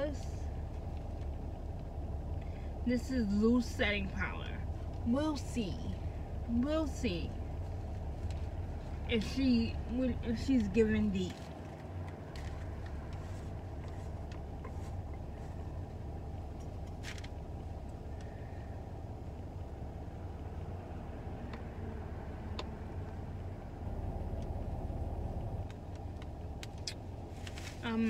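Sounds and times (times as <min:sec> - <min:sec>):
vehicle rumble inside car: 0:00.0 - 0:28.0.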